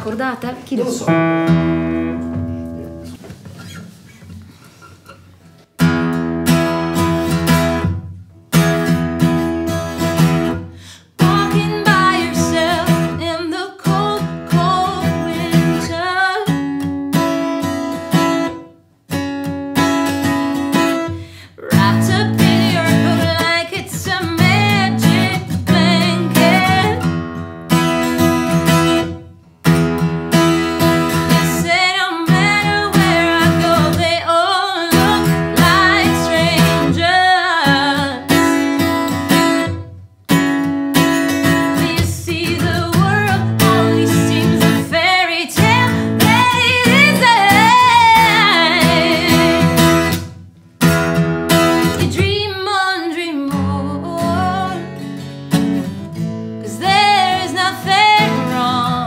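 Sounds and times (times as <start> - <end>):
strummed acoustic guitar: 0.0 - 59.0
woman singing: 11.0 - 16.8, 21.5 - 27.1, 30.8 - 39.0, 41.4 - 50.1, 51.7 - 55.0, 56.6 - 59.0.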